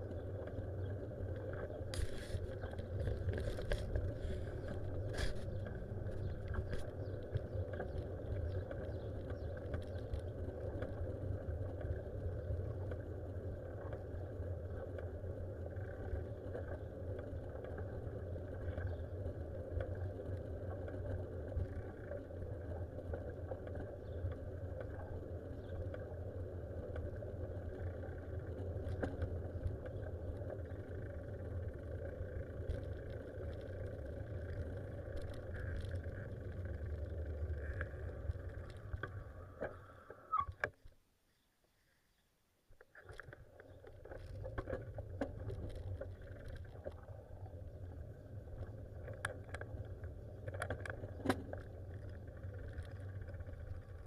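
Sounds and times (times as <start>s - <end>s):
road travel rumble: 0.0s - 40.8s
wind: 0.0s - 54.0s.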